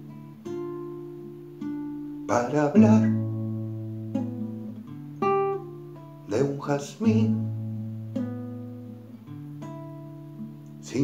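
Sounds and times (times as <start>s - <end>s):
classical guitar chords strummed: 0.0s - 11.0s.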